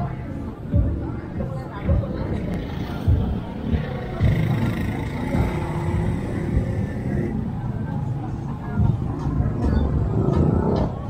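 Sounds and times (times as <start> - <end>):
low traffic rumble: 0.0 - 11.0
people's voices: 0.0 - 11.0.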